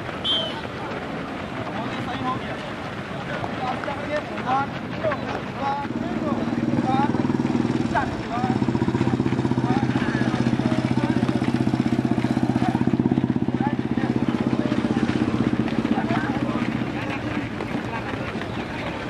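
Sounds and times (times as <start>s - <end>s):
faint voices: 0.0s - 19.0s
small engine idling: 6.2s - 19.0s.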